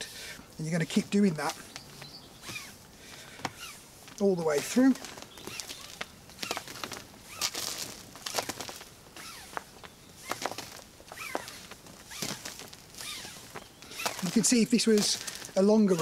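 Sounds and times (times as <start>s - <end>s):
climbing rope swishing against clothing: 0.8s - 16.0s.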